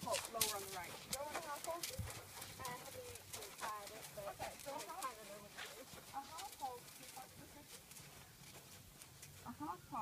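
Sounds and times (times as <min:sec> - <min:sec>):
horse hoofbeats: 0:00.0 - 0:10.0.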